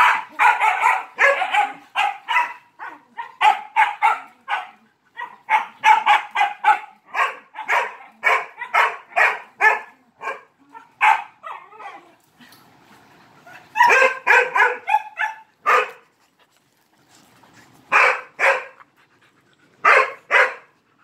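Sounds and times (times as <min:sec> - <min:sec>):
dog barking: 0:00.0 - 0:11.6, 0:13.8 - 0:16.0, 0:17.9 - 0:18.8, 0:19.8 - 0:20.7.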